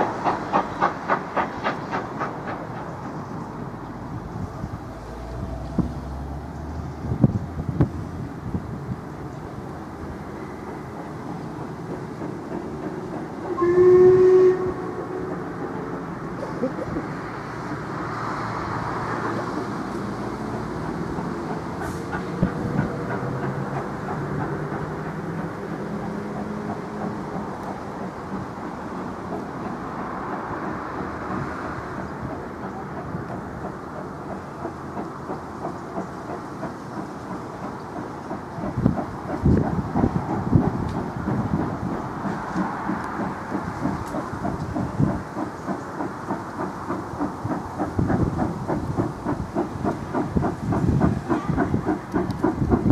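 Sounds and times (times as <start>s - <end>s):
steam locomotive exhaust beats: 0.0s - 52.9s
steam locomotive whistle: 13.5s - 15.6s.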